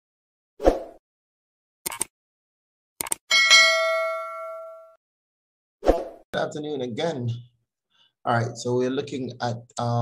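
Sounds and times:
quick clicks: 0:01.9 - 0:02.1, 0:03.0 - 0:03.2
bright bell ding: 0:03.3 - 0:05.0.

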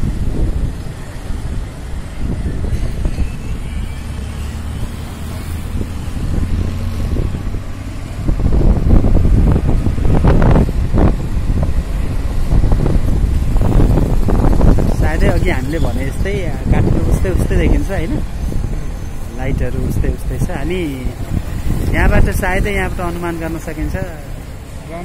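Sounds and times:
motorcycle engine rumble: 0:00.0 - 0:22.9
wind buffeting microphone: 0:00.0 - 0:24.8.

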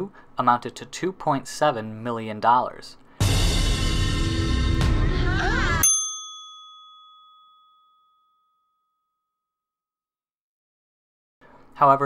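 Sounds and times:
music: 0:03.2 - 0:05.9
bell-like ding: 0:05.8 - 0:09.4.

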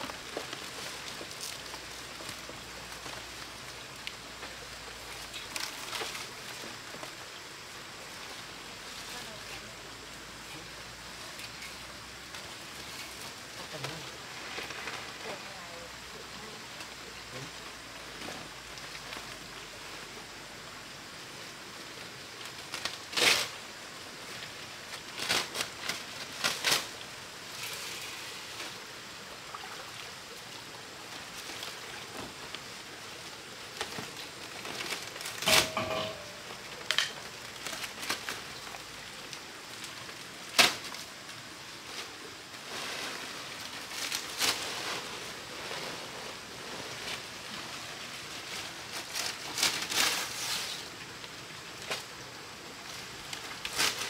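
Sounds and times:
palm fronds rustling and crackling: 0:00.0 - 0:54.0
steady outdoor hiss: 0:00.0 - 0:54.0.

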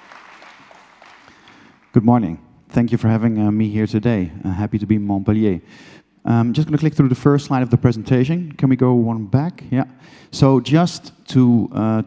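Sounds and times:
audience applause: 0:00.0 - 0:02.0.

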